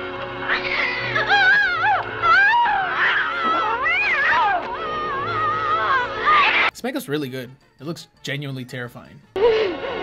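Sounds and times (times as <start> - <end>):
cats yowling and screeching: 0.4 - 6.7.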